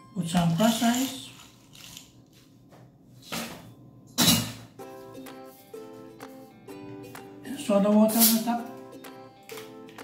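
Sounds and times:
light ukulele music: 0:04.8 - 0:10.0.

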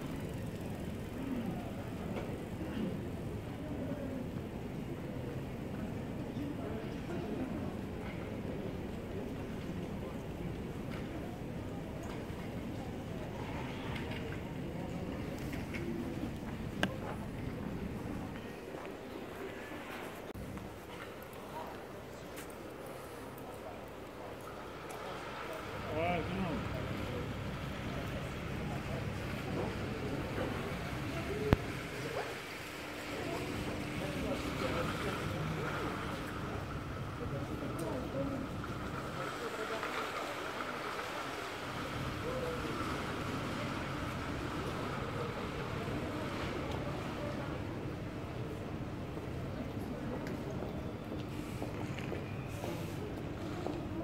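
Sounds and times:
indistinct voices of passers-by: 0:00.0 - 0:54.0
steady background hum: 0:00.0 - 0:54.0.

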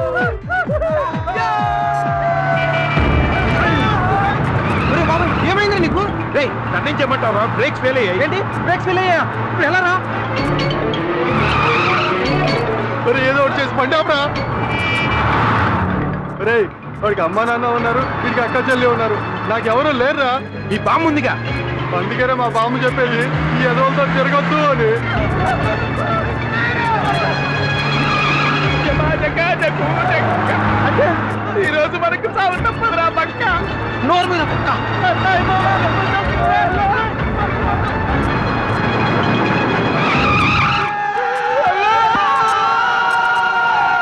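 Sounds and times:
men shouting excitedly: 0:00.0 - 0:05.8, 0:23.5 - 0:38.2, 0:40.8 - 0:44.0
film music: 0:00.0 - 0:44.0
tyres skidding and squealing: 0:00.0 - 0:44.0
car engine droning: 0:02.0 - 0:44.0.

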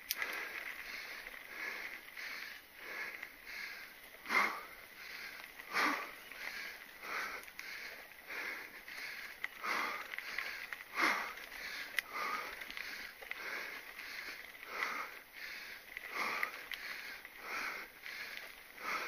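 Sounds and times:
person breathing hard: 0:00.1 - 0:19.0.

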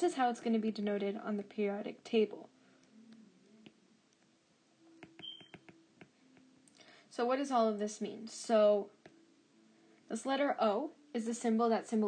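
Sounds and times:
quiet low hum: 0:00.0 - 0:12.0
stylus tapping on glass screen: 0:05.0 - 0:06.5.

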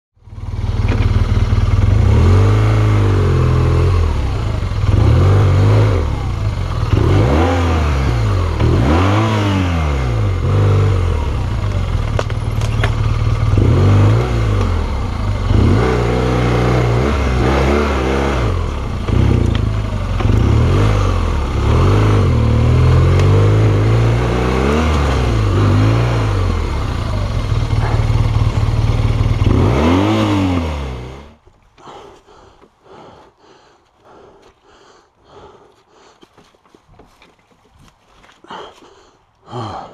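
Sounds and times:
motorcycle engine revving: 0:00.2 - 0:33.2.

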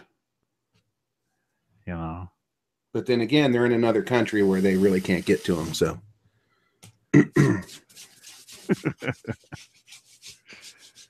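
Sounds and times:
man clearing throat: 0:07.1 - 0:07.8.

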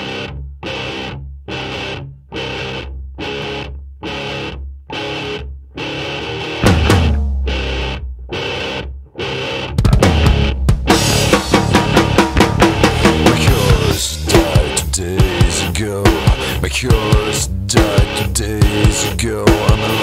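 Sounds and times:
distorted electric guitar chords: 0:00.0 - 0:20.0
full band playing: 0:06.6 - 0:08.0, 0:09.8 - 0:20.0.

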